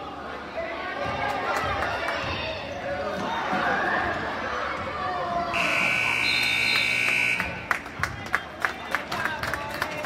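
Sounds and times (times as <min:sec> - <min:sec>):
crowd chatter: 0:00.0 - 0:10.0
scoreboard buzzer tone: 0:05.6 - 0:07.7.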